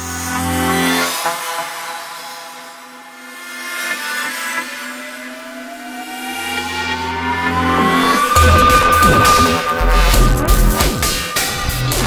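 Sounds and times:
rising pitch sweep: 0:05.0 - 0:12.0
sustained synth tones: 0:05.2 - 0:12.0.

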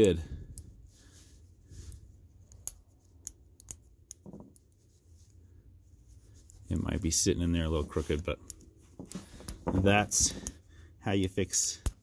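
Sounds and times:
sharp metal clicks: 0:02.5 - 0:04.2.

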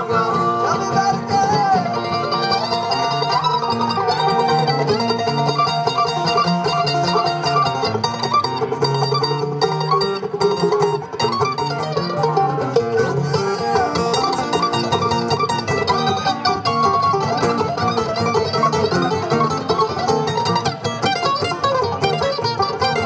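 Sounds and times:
acoustic guitar: 0:00.0 - 0:23.0
banjo: 0:00.0 - 0:23.0
mandolin: 0:00.0 - 0:23.0.

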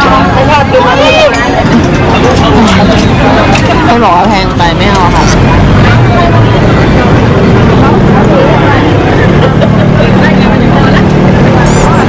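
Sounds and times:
crowd talking: 0:00.0 - 0:12.0
passing vehicle traffic: 0:00.0 - 0:12.0.

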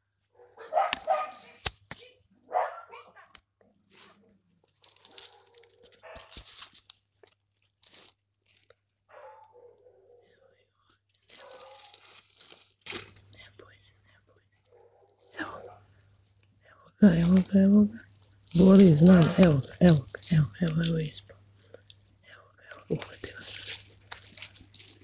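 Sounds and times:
crunching of dry soil and leaves: 0:04.0 - 0:09.0, 0:11.1 - 0:13.3, 0:17.0 - 0:21.1, 0:22.9 - 0:25.0.

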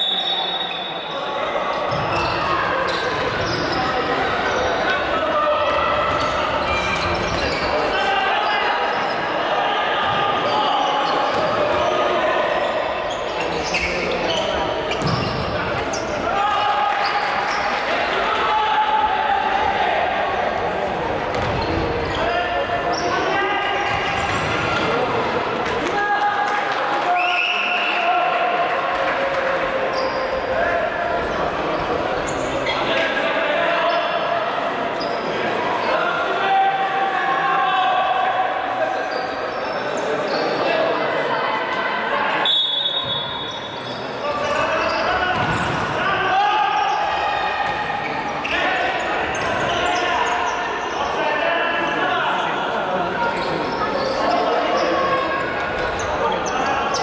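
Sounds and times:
spectators' voices: 0:00.0 - 0:57.0
players calling: 0:42.3 - 0:57.0.

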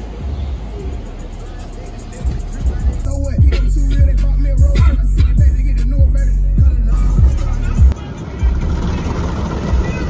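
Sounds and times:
car wash machinery rumble: 0:00.0 - 0:10.0.

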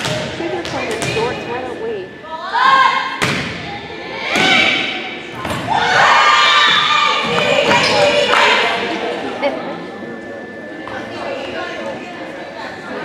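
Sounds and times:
crowd shouting and cheering: 0:01.0 - 0:11.6
volleyball being struck: 0:03.1 - 0:03.7.

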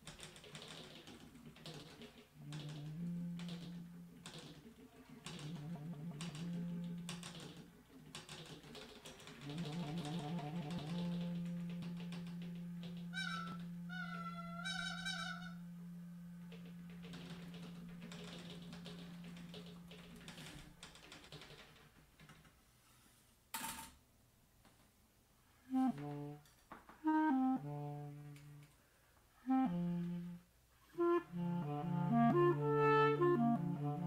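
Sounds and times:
clarinet low note: 0:02.4 - 0:04.2, 0:05.3 - 0:07.3, 0:09.4 - 0:19.9, 0:25.7 - 0:26.4, 0:27.0 - 0:28.7, 0:29.4 - 0:34.0
warbling bird-like whistle: 0:13.0 - 0:15.9.

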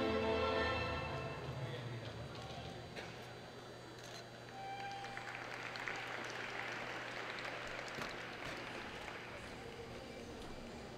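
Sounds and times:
small crowd applauding: 0:04.5 - 0:10.1.

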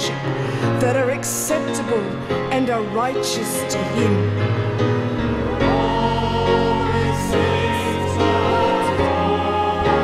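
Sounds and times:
sustained chords and bass line: 0:04.0 - 0:10.0
choir-like worship singing: 0:05.2 - 0:10.0.

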